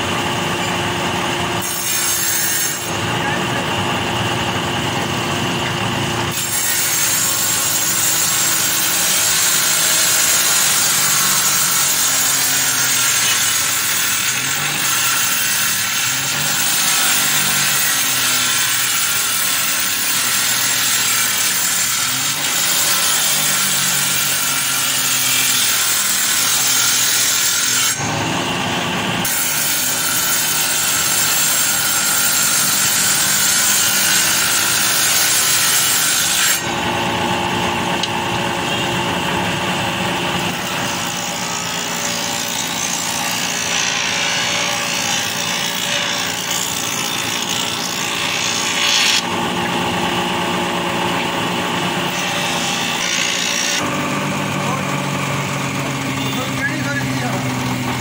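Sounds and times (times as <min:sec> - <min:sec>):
planer cutting wood: 0:00.0 - 0:58.0.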